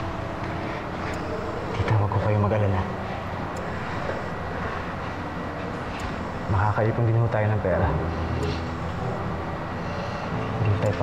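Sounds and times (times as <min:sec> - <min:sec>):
background rumble and hiss: 0:00.0 - 0:11.0.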